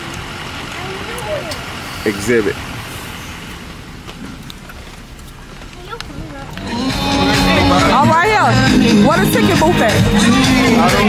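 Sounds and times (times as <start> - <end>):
car engine hum: 0.0 - 11.0
surrounding traffic: 0.0 - 11.0.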